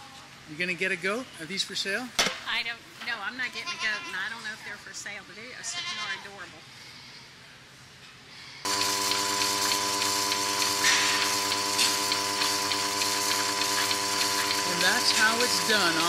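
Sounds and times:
milking machine vacuum pump hum: 0:08.7 - 0:16.0.

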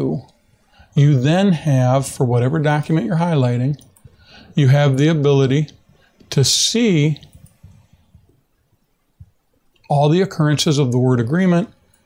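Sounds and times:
person speaking: 0:00.0 - 0:08.3, 0:09.8 - 0:11.8
soft computer mouse clicks: 0:07.2 - 0:08.3.

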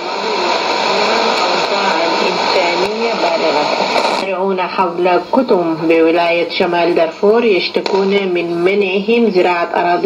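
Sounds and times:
person reading news on radio: 0:00.0 - 0:10.0
radio hiss and static: 0:00.0 - 0:10.0.

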